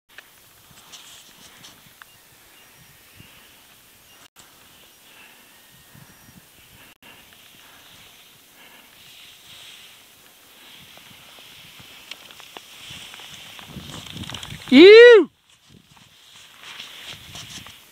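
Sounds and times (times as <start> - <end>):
soft steady hiss: 0.1 - 17.9
small clicks and crunches: 10.9 - 14.7.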